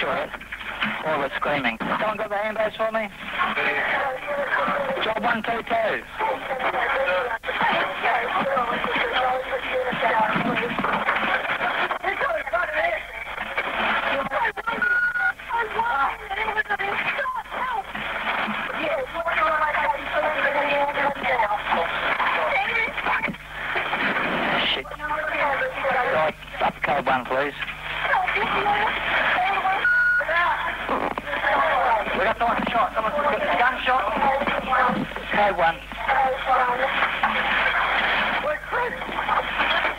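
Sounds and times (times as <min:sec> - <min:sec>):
voices over crackly two-way radio: 0:00.0 - 0:39.9.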